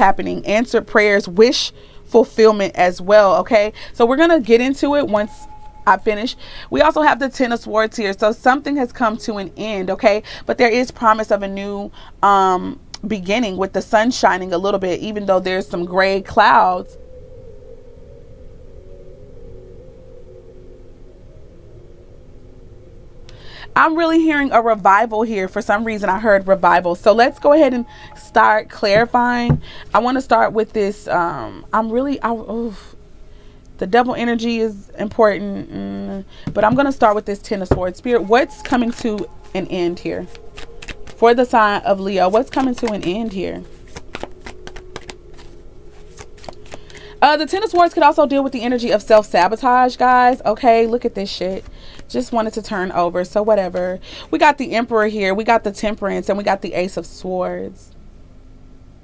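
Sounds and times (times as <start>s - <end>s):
faint steady low hum: 0.0s - 59.0s
low rumble: 16.0s - 24.9s
cards being shuffled: 40.3s - 41.2s, 42.3s - 47.1s.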